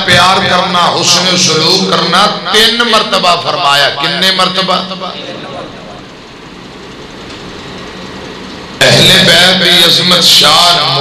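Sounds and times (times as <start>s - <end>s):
man's amplified voice: 0.0s - 6.1s, 8.8s - 11.0s
sound system hum and hiss: 0.0s - 11.0s.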